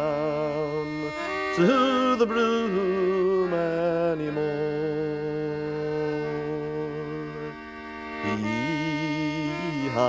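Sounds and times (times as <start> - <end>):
sustained drone chord: 3.1 - 10.0.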